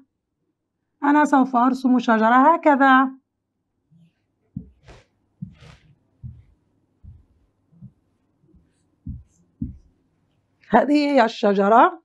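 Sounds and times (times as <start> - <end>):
marker knocking on whiteboard: 4.6 - 8.0, 9.1 - 9.9.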